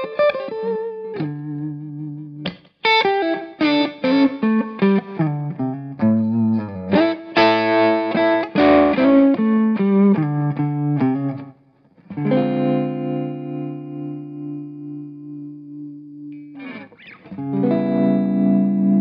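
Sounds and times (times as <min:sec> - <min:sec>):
electric guitar through amplifier: 0:00.0 - 0:19.0.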